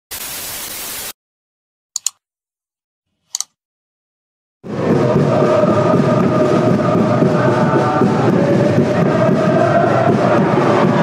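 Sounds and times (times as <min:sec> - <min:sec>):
static glitch noise: 0:00.1 - 0:01.2
mouse click sound effect: 0:02.0 - 0:02.2, 0:03.3 - 0:03.6.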